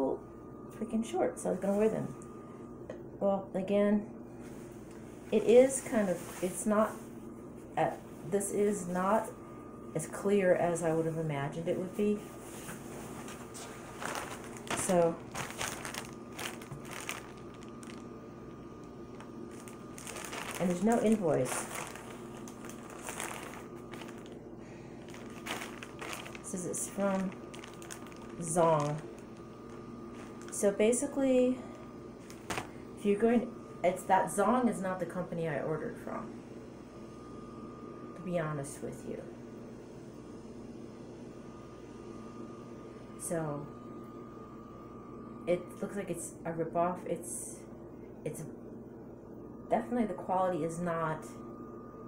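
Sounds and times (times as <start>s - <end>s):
low machine hum: 0.0s - 52.0s
plastic bag crinkling: 13.5s - 18.2s, 18.8s - 30.8s, 31.7s - 32.8s.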